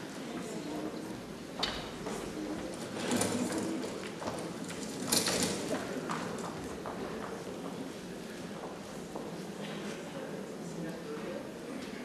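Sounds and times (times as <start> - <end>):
faint low voices: 0.0 - 12.0.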